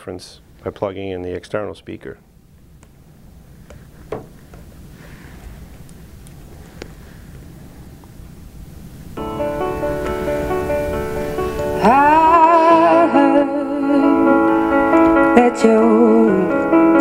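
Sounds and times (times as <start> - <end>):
instrumental music through speaker: 9.2 - 17.0
person singing: 11.1 - 17.0.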